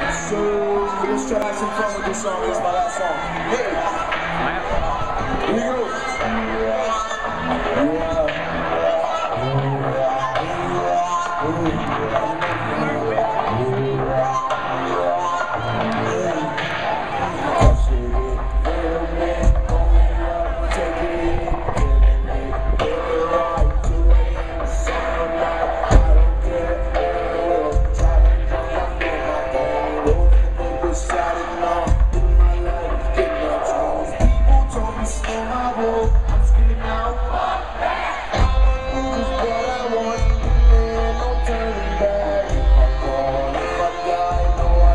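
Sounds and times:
crowd voices: 0:00.0 - 0:44.9
live band music through pa: 0:00.0 - 0:44.9
person singing: 0:05.0 - 0:37.7, 0:38.3 - 0:44.9.

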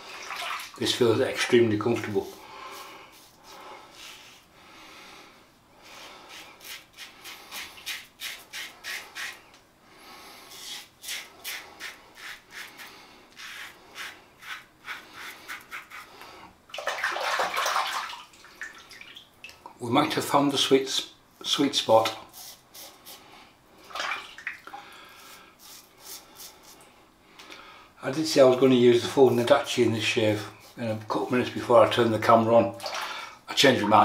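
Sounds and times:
running water: 0:00.0 - 0:02.2, 0:16.7 - 0:19.7
razor scraping stubble: 0:06.3 - 0:09.4, 0:10.5 - 0:16.1.

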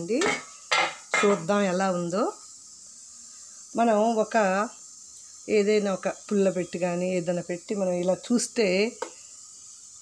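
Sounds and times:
steel cookware clattering and scraping: 0:00.2 - 0:01.4.

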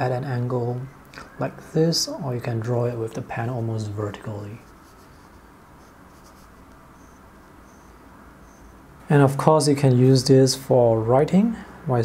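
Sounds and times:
low room hum: 0:00.0 - 0:12.0
pen nib scratching on paper: 0:04.6 - 0:08.8.

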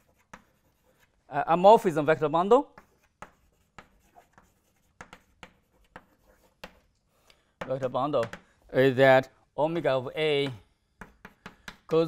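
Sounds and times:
chalk scratching on blackboard: 0:00.0 - 0:01.2, 0:02.6 - 0:07.0, 0:11.0 - 0:12.0.

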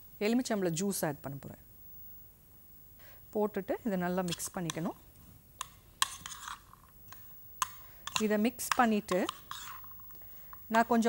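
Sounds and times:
spoon scraping container: 0:04.2 - 0:04.8, 0:05.6 - 0:11.0
spoon clicking: 0:05.6 - 0:10.6.

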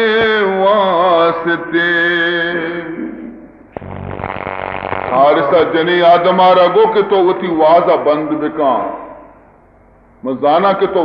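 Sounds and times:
man speaking: 0:05.1 - 0:09.1.

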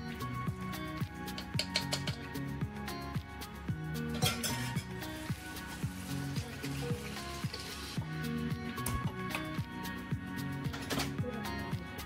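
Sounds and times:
background music with drum beat: 0:00.0 - 0:12.0.

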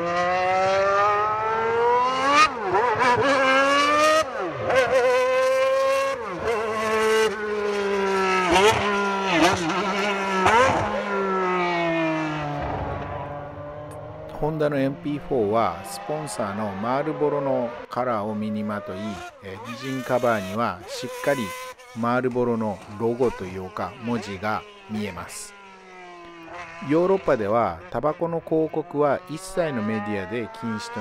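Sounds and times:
racing car engine accelerating: 0:00.0 - 0:17.9.

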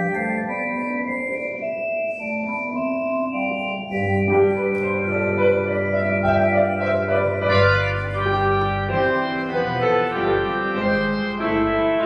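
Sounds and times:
organ playing slow chords: 0:00.0 - 0:12.0.

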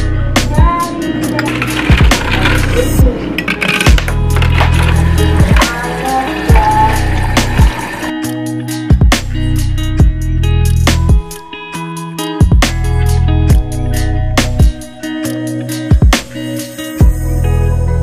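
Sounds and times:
background music with deep bass: 0:00.0 - 0:18.0.

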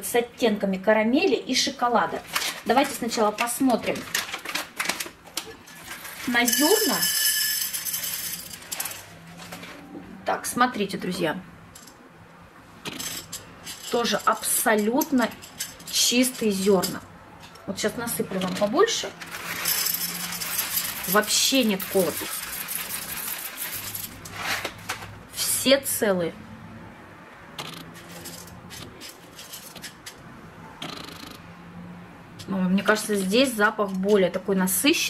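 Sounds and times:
coffee beans rattling on a plate: 0:05.7 - 0:09.3, 0:18.5 - 0:24.8.

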